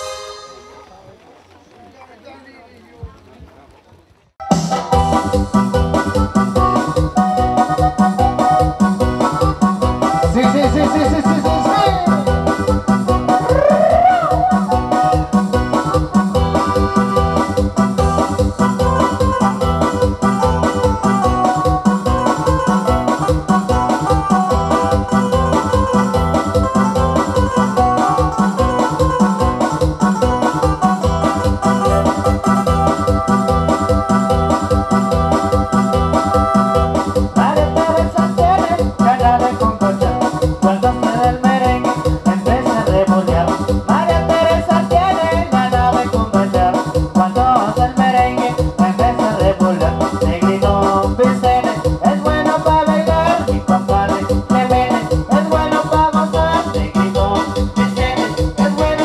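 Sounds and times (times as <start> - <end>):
keyboard playing latin dance music: 0.0 - 1.1, 4.4 - 59.0.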